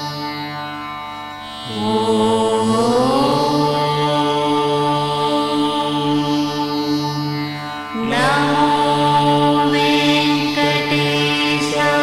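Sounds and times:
steady drone: 0:00.0 - 0:12.0
person chanting a mantra: 0:01.6 - 0:12.0.

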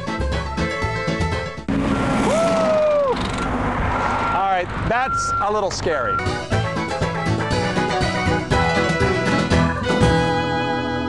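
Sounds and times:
freeway traffic rushing: 0:01.6 - 0:07.6
held tone: 0:04.2 - 0:06.4
upbeat background music: 0:04.9 - 0:11.0.

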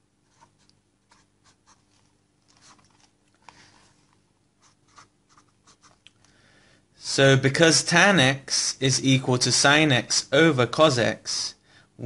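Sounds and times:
marker scratching on paper: 0:00.2 - 0:02.9, 0:04.6 - 0:06.0.

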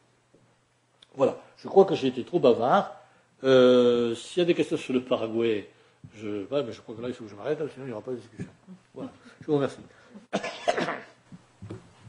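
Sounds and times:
faint room sounds: 0:00.0 - 0:12.0
person coughing: 0:10.2 - 0:11.2.

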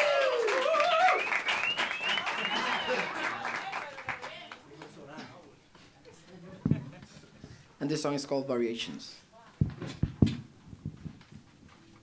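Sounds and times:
microphone handling thump: 0:09.6 - 0:11.5
microphone knocks and rubs: 0:09.6 - 0:11.8.

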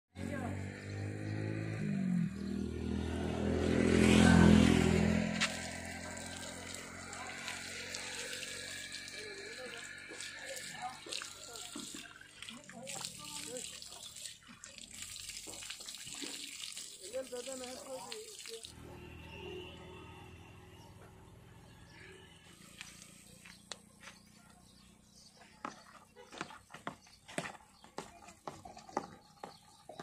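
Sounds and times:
tap water splashing on ground: 0:05.4 - 0:08.6, 0:10.1 - 0:18.7.

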